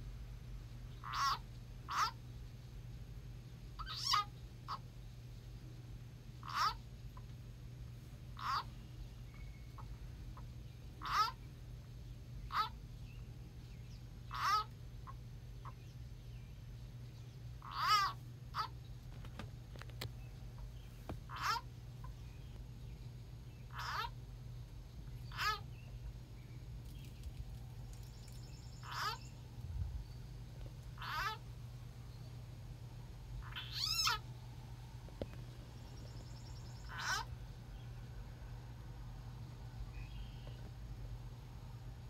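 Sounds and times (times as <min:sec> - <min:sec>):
steady low hum: 0:00.0 - 0:42.0
animal calling: 0:01.0 - 0:02.2, 0:03.8 - 0:04.8, 0:06.4 - 0:06.8, 0:08.4 - 0:08.7, 0:11.0 - 0:11.4, 0:12.5 - 0:12.8, 0:14.3 - 0:15.8, 0:17.6 - 0:18.8, 0:21.3 - 0:21.8, 0:23.7 - 0:24.2, 0:25.3 - 0:25.7, 0:28.6 - 0:29.4, 0:31.0 - 0:31.5, 0:33.4 - 0:34.3, 0:36.7 - 0:37.4.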